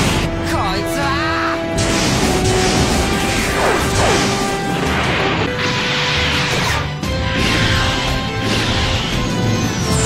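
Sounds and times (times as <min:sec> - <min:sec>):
background music: 0:00.0 - 0:10.0
beam weapons firing: 0:01.8 - 0:10.0.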